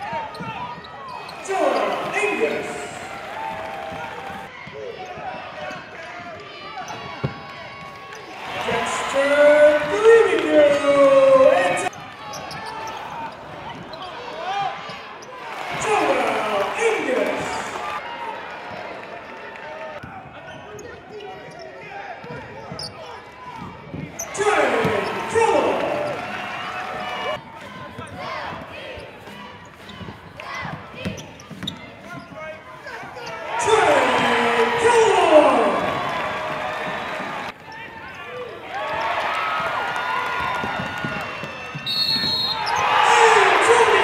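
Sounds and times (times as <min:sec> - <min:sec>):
shouting voices: 0:01.2 - 0:04.5, 0:08.4 - 0:11.9, 0:15.6 - 0:18.0, 0:24.2 - 0:29.0, 0:32.9 - 0:37.9, 0:42.2 - 0:44.0.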